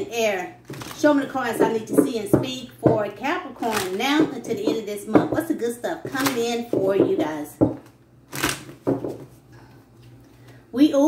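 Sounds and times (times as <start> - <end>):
cards being shuffled: 0.7 - 1.0, 7.8 - 9.4.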